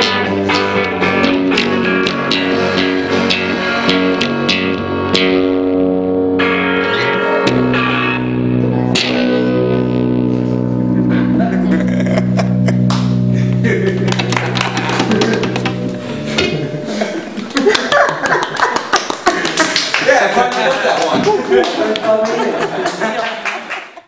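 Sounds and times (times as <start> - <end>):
acoustic guitars ringing: 0.0 - 18.4
people clapping: 12.8 - 13.2, 13.9 - 15.8, 17.4 - 24.0.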